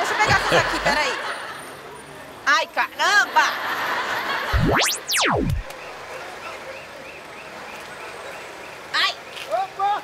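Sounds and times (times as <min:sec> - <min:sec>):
outdoor traffic noise: 0:00.0 - 0:04.5, 0:05.6 - 0:10.0
faint repeating chirp: 0:04.5 - 0:05.7
rising whistle-like sound: 0:04.5 - 0:05.7.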